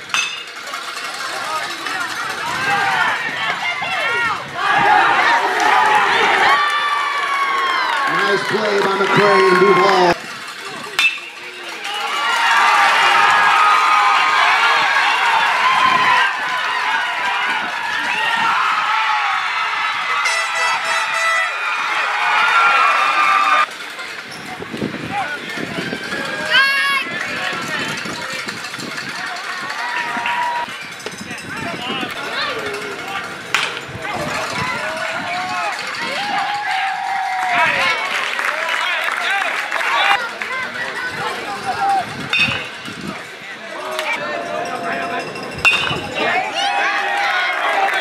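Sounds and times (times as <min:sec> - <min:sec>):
crowd cheering and shouting: 0:00.0 - 0:48.0
scattered voices chatting: 0:08.1 - 0:11.9, 0:39.4 - 0:48.0
loud call: 0:20.1 - 0:23.7.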